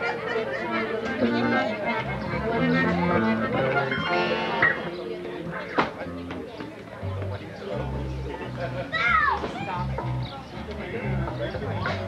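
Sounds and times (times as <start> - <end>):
band with accordion playing: 0.0 - 6.5
electric bass notes: 0.7 - 5.0, 6.0 - 12.0.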